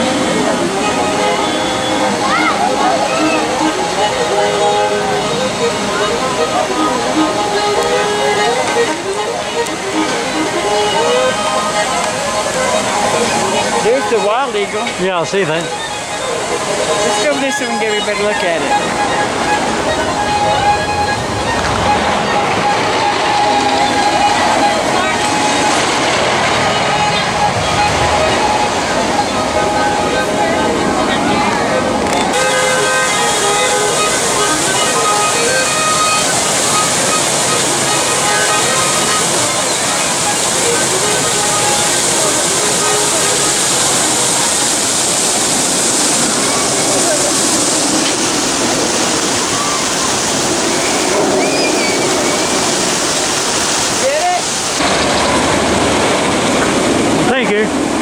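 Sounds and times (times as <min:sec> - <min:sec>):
faint music: 0:00.0 - 0:52.8
crowd voices: 0:00.0 - 0:58.0
fountain water splashing: 0:00.0 - 0:58.0.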